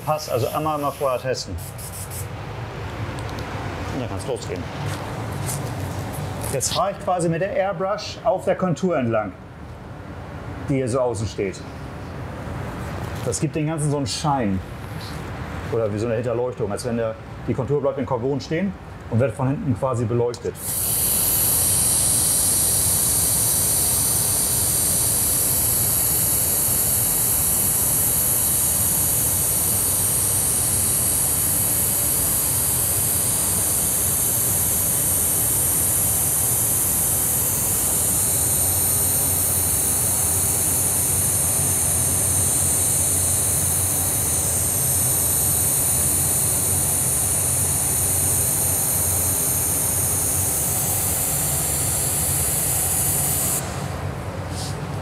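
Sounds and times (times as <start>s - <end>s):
airbrush hissing: 0.0s - 2.3s, 20.6s - 53.9s.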